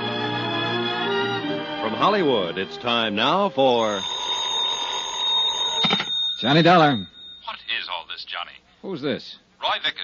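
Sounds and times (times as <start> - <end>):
telephone bell ringing: 3.7 - 7.8.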